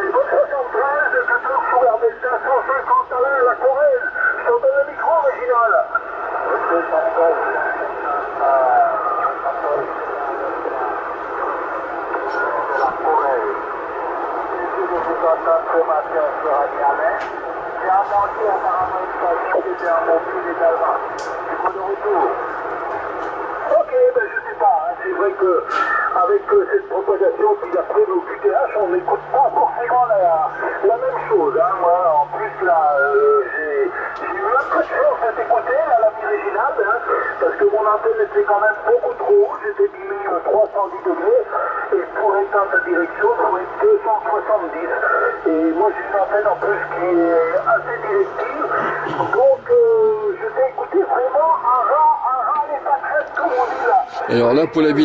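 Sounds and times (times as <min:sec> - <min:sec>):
narrow-band radio voices talking: 0:00.0 - 0:55.0.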